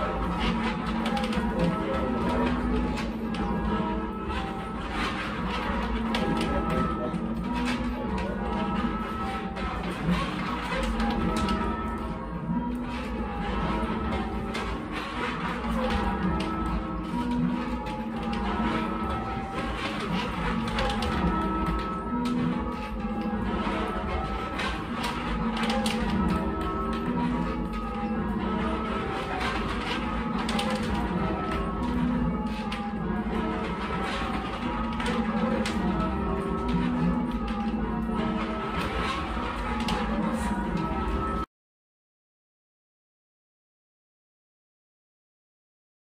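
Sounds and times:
church bells ringing: 0.0s - 41.5s.

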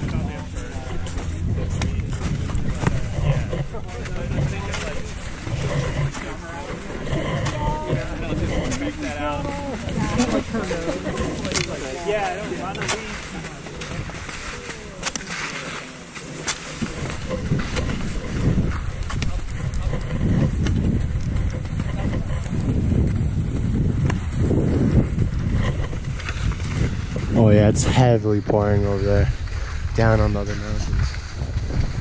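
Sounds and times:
wind on microphone: 0.0s - 12.2s, 16.8s - 32.0s
people talking in background: 0.0s - 20.5s
skis scraping over wet snow: 0.0s - 32.0s.

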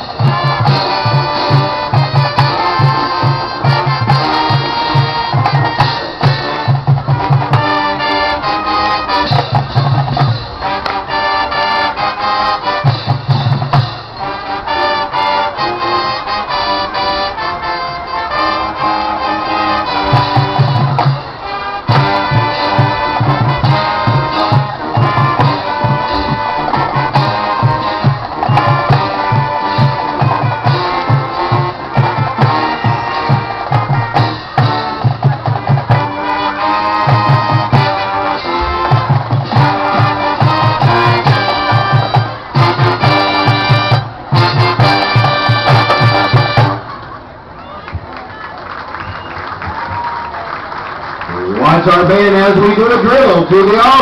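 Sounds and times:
marching band playing: 0.0s - 54.0s.

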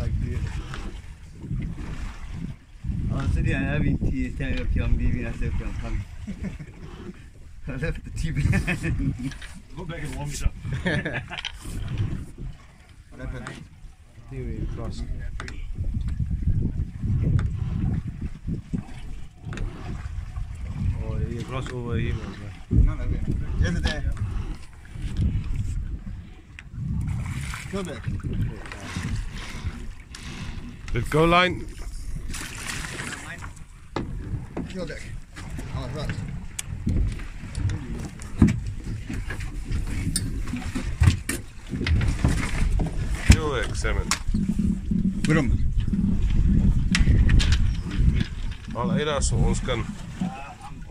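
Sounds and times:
wind buffeting microphone: 0.0s - 50.9s
knocks and thumps on boat deck: 15.2s - 24.4s, 31.8s - 50.9s
steady low rumble: 33.3s - 50.9s.

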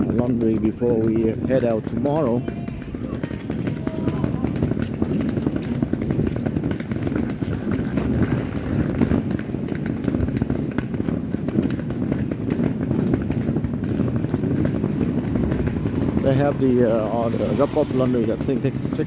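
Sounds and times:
traffic and scooters rumbling: 0.0s - 19.0s
footstep clicks and scuffs: 2.4s - 16.6s.

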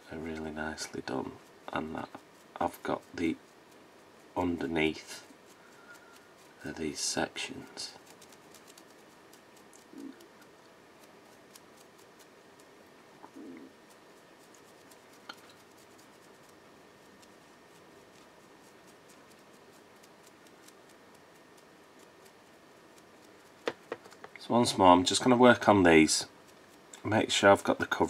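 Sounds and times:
dry brush ticks and scratches: 0.0s - 28.0s.

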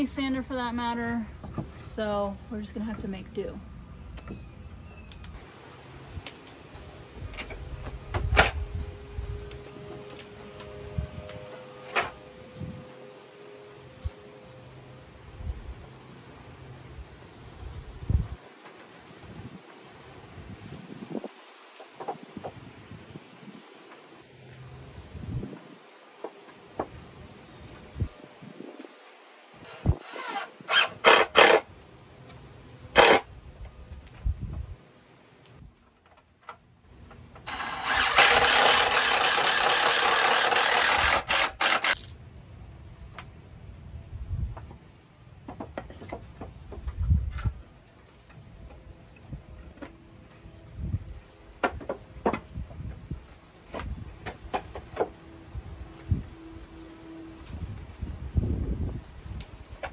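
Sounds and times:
wind rumbling on microphone: 7.1s - 9.6s, 10.8s - 11.4s, 17.5s - 18.5s, 19.1s - 23.8s, 24.9s - 25.9s, 33.3s - 34.8s, 43.7s - 44.9s, 46.6s - 47.8s, 50.5s - 54.5s, 57.4s - 59.9s
cordless drill driving screws: 29.6s - 31.6s, 33.0s - 33.2s, 37.4s - 42.1s.

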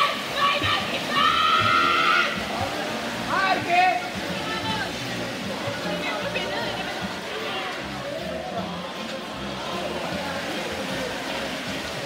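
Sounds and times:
spectators cheering: 0.0s - 2.4s
swimmers splashing: 0.0s - 12.0s.

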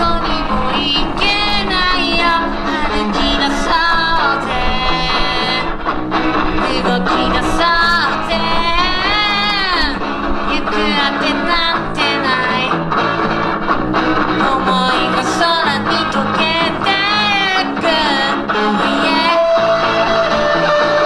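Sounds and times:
young man singing: 0.0s - 5.8s, 6.5s - 12.8s, 14.4s - 21.0s
drums: 0.0s - 21.0s
electric guitar: 0.0s - 21.0s.

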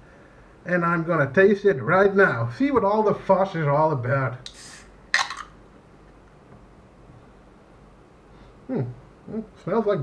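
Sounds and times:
can opening pop and fizz: 4.4s - 5.6s.

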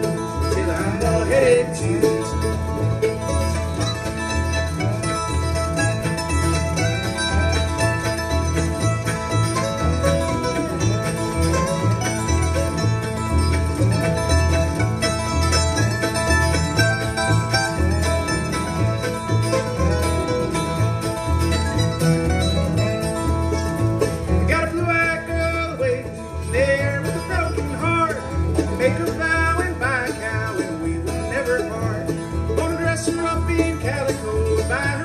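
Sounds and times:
bowed fiddle melody: 0.0s - 35.0s
plucked upright bass: 0.0s - 35.0s
strummed acoustic guitar: 0.0s - 35.0s.

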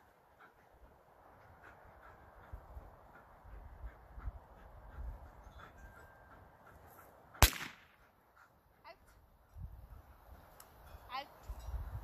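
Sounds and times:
gunshot with echo: 7.4s - 8.0s.

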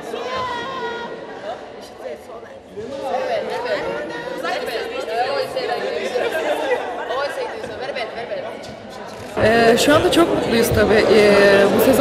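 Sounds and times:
women chattering: 9.0s - 12.0s.

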